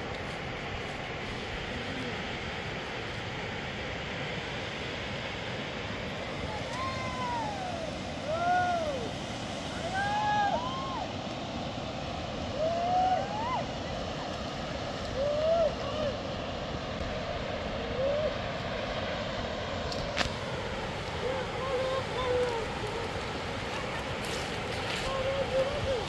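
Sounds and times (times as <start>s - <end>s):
mountain river rushing: 0.0s - 26.0s
person shouting: 6.6s - 9.1s, 25.1s - 26.0s.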